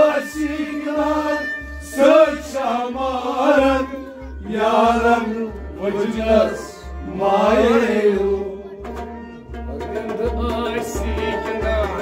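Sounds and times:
men singing chant-like: 0.0s - 9.0s, 9.8s - 12.0s
bowed string instrument: 0.0s - 12.0s.

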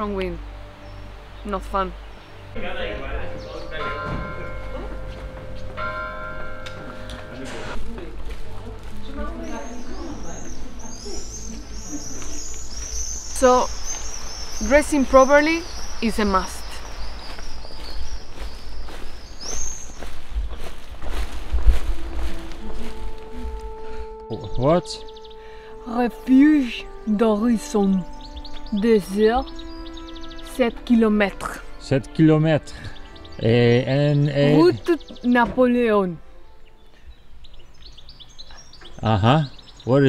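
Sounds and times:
held music notes: 0.0s - 40.0s
church bell tolling: 2.6s - 11.7s
high bird chirp: 3.0s - 6.1s, 9.0s - 40.0s
footsteps on path: 3.8s - 31.8s, 34.6s - 35.9s
wind rumbling on microphone: 9.5s - 23.6s.

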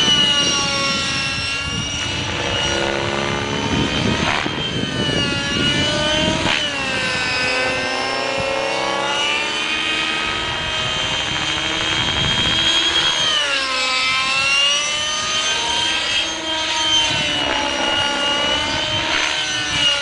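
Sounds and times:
model helicopter whining: 0.0s - 20.0s.

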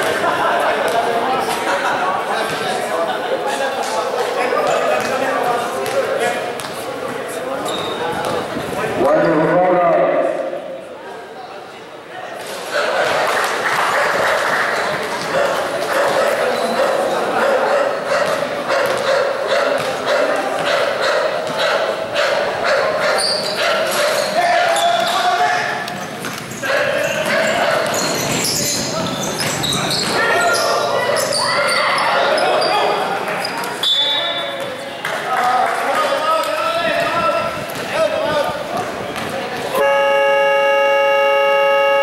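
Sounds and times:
people chattering and shouting: 0.0s - 42.0s
basketball bouncing on court: 19.8s - 20.0s.

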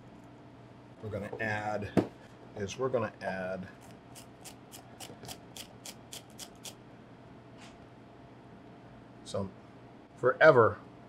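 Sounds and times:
chili scraping on handheld slicer: 3.8s - 6.8s.

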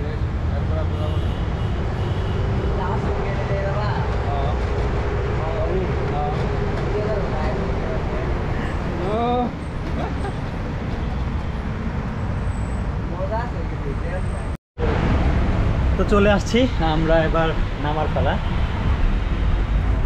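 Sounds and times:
bus engine and road rumble: 0.0s - 20.0s
people's voices: 2.6s - 10.4s.

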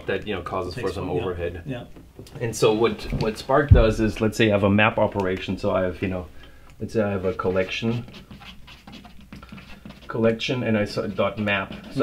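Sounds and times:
chalk scraping on chalkboard: 6.8s - 12.0s.

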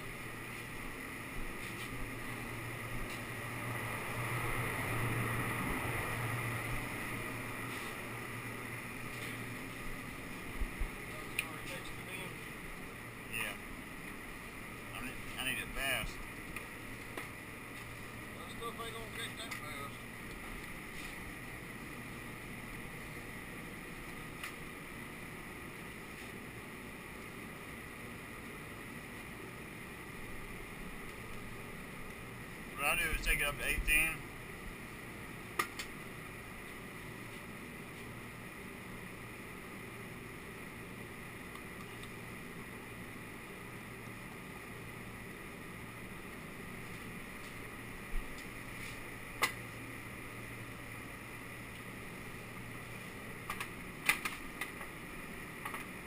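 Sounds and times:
shop machinery humming: 0.0s - 56.0s.

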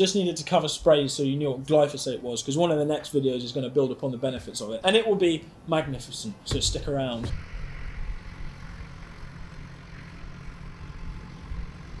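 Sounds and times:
distant tractor engine humming: 4.2s - 12.0s.

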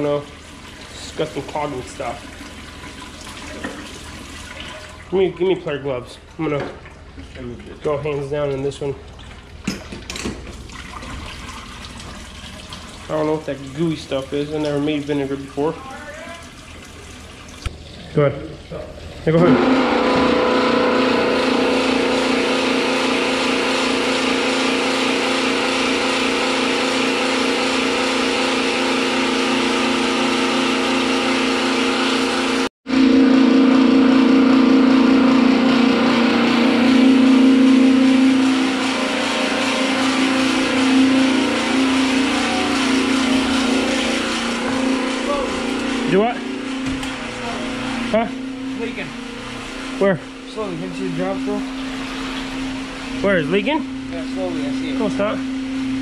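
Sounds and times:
liquid running into tub: 0.0s - 32.7s, 33.7s - 56.0s
electric pump motor humming: 0.0s - 56.0s.

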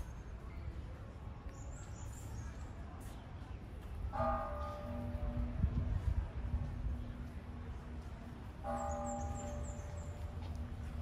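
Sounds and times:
low outdoor rumble: 4.8s - 11.0s.

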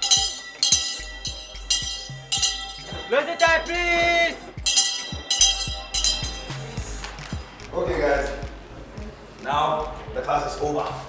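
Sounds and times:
handbell clanging: 0.0s - 7.5s
low repeating beat: 0.0s - 10.8s.

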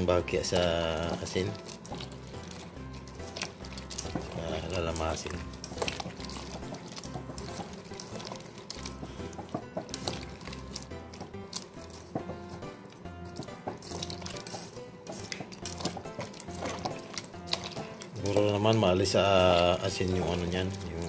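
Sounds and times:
background music with bass: 0.0s - 21.0s
wet squishing of kneaded radish: 0.0s - 21.0s.

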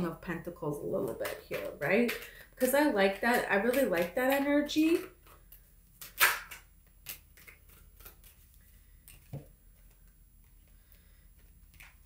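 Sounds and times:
cards being shuffled: 1.0s - 10.8s, 11.4s - 12.0s.

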